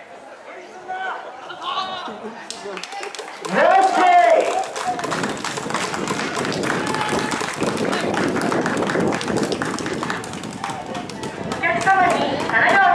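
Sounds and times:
crowd voices: 0:00.0 - 0:12.9
crowd applauding: 0:02.5 - 0:12.9.

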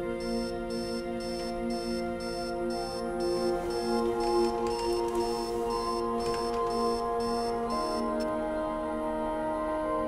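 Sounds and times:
alarm clock beeping: 0:00.0 - 0:08.3
soft sustained music: 0:00.0 - 0:10.0.

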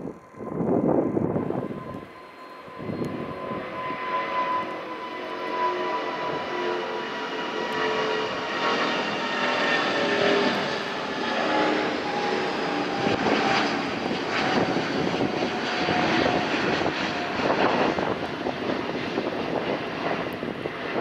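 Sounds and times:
jet engines at takeoff thrust: 0:00.0 - 0:21.0.

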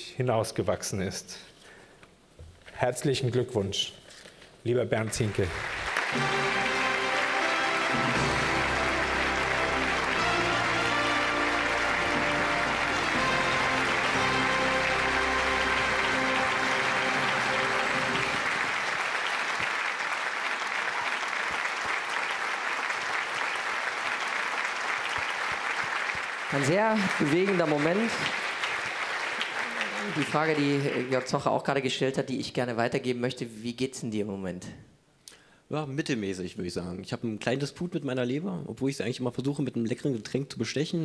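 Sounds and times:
audience applauding: 0:05.0 - 0:31.7
music: 0:05.9 - 0:19.1.

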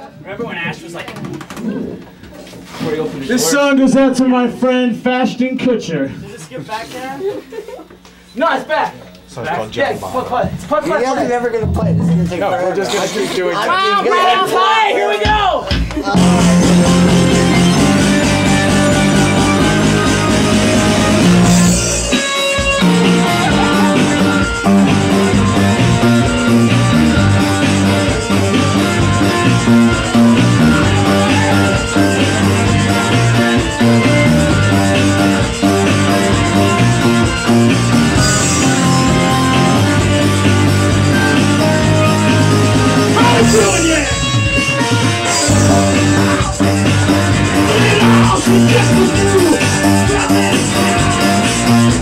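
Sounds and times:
rock band playing: 0:11.3 - 0:13.0, 0:15.7 - 0:52.0
electric guitar: 0:15.8 - 0:52.0
man chuckling: 0:23.0 - 0:24.5
talking: 0:43.0 - 0:44.5, 0:45.4 - 0:52.0.

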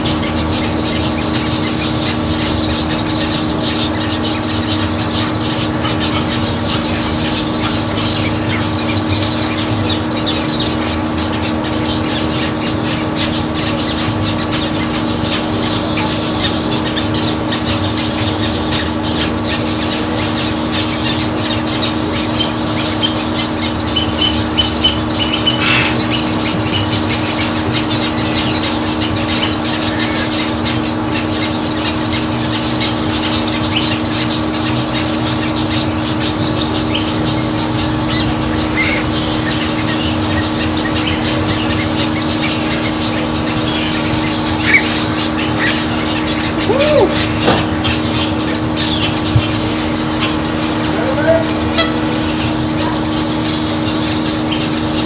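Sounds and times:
birds chattering: 0:00.0 - 0:55.0
steady low hum: 0:00.0 - 0:55.0
short higher bird calls: 0:24.0 - 0:27.4, 0:43.7 - 0:52.9.

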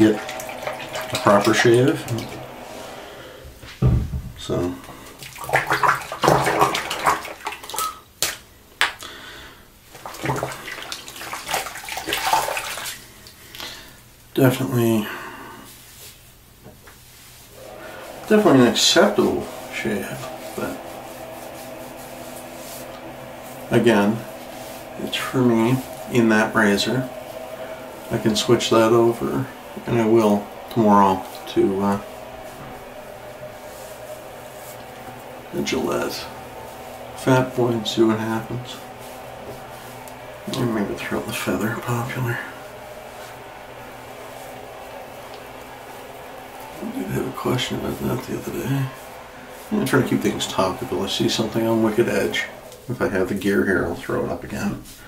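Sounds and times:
tap water running and splashing: 0:00.0 - 0:02.6, 0:05.0 - 0:08.4, 0:09.9 - 0:13.4
room noise hiss: 0:00.0 - 0:55.0
towel brushing skin: 0:09.9 - 0:13.0, 0:17.0 - 0:53.4.

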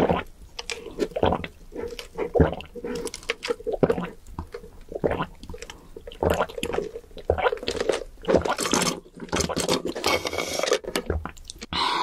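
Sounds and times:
swallowing gulps: 0:00.0 - 0:09.6, 0:11.0 - 0:11.9
sucking through a straw: 0:00.0 - 0:12.0.

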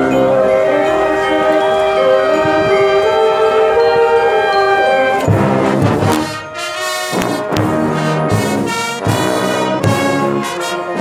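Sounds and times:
brass band sustained chords: 0:00.0 - 0:11.0.

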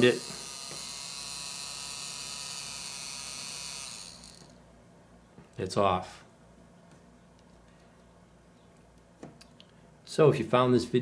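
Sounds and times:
small electric motor running: 0:00.0 - 0:04.6.

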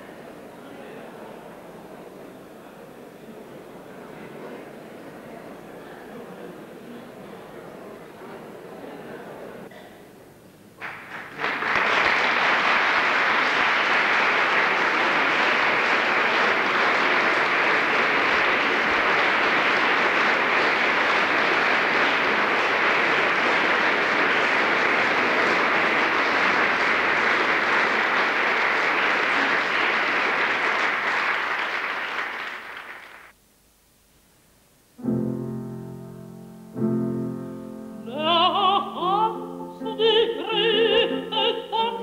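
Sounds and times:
audience applauding: 0:10.8 - 0:33.4.

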